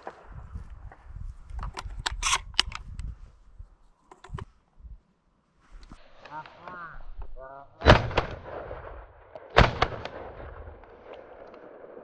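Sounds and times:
echo crack and rumble: 6.2s - 12.0s
shotgun shots: 7.8s - 12.0s.

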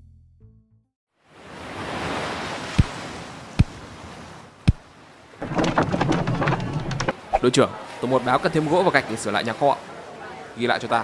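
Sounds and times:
knocking: 5.4s - 7.2s
voices: 6.4s - 11.0s.

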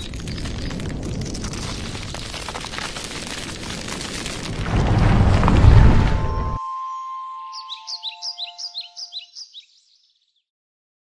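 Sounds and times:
high ringing tones: 5.5s - 9.3s
bird-like chirps: 6.2s - 10.5s.

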